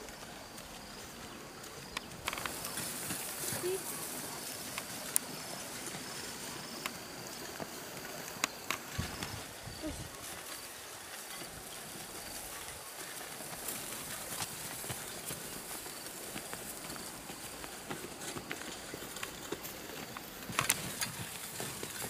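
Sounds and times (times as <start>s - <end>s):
plodding animal steps: 0.0s - 22.0s
steady outdoor hiss: 0.0s - 22.0s
wooden harrow scraping soil: 0.0s - 22.0s.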